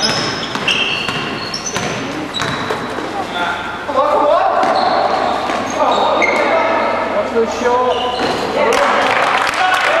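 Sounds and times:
basketball bouncing: 0.0 - 3.1
trainers squeaking on court: 0.0 - 3.8, 4.5 - 6.8, 7.5 - 8.7.

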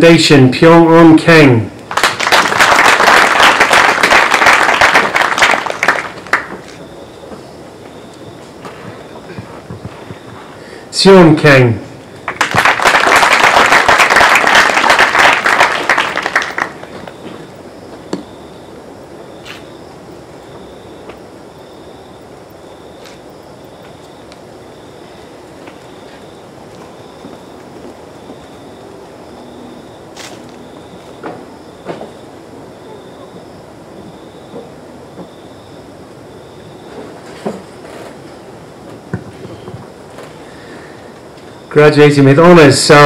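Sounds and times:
audience applauding: 1.9 - 6.8, 12.2 - 17.3
faint high pulsing tone: 17.0 - 37.2.

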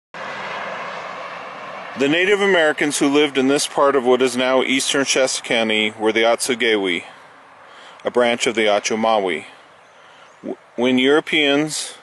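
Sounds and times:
highway traffic passing: 0.2 - 12.0.

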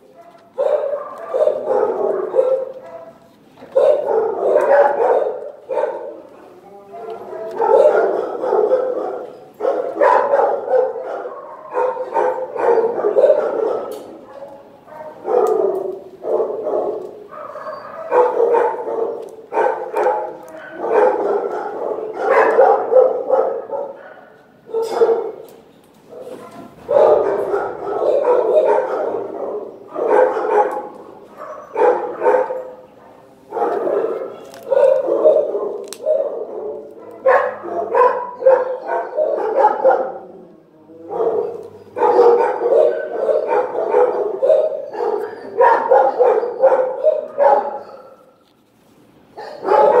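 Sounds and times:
dogs barking: 0.0 - 48.4, 49.3 - 50.0.

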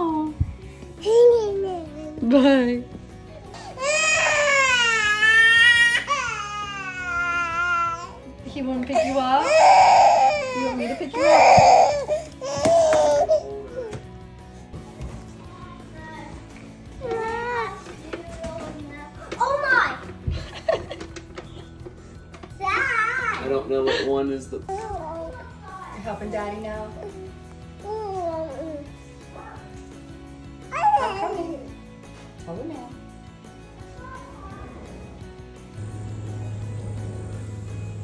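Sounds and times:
background music: 0.0 - 38.0
toddler crying: 1.0 - 2.2, 3.4 - 8.2, 8.9 - 14.0, 17.0 - 17.9, 24.7 - 25.7, 27.0 - 29.6, 30.7 - 31.8.

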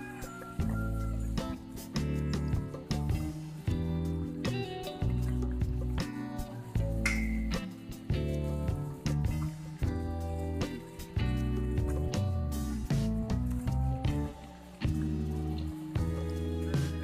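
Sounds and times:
held notes over deep bass: 8.2 - 17.0.

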